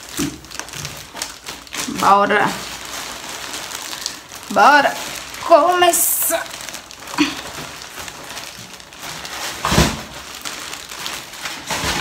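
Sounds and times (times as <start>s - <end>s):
rustling and crinkling: 0.0s - 12.0s.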